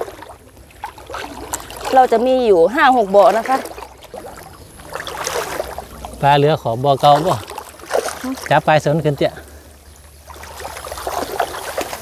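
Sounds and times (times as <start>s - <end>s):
water sloshing and splashing: 0.0s - 12.0s.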